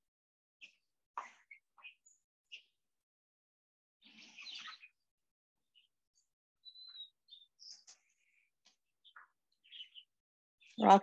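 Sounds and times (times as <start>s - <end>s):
chickens chirping and clucking: 4.0s - 5.0s, 6.6s - 11.0s.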